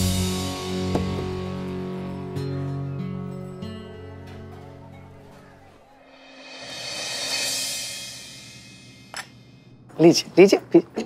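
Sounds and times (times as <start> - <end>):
cymbal-like swell: 6.0 - 9.8.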